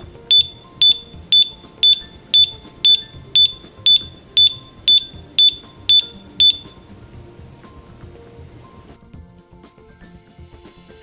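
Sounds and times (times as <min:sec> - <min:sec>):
gas detector beeping: 0:00.0 - 0:07.0.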